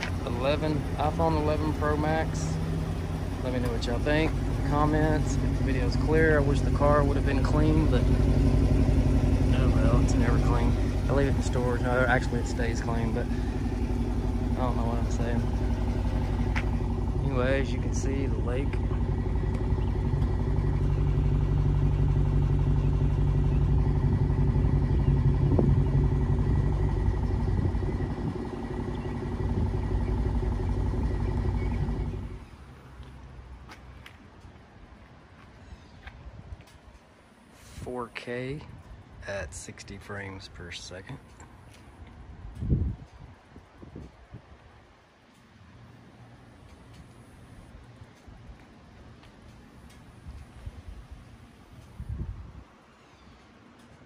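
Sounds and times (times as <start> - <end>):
car engine idling: 0.0 - 44.1, 44.7 - 54.0
wind buffeting microphone: 23.6 - 30.2, 42.2 - 44.6, 51.8 - 52.7.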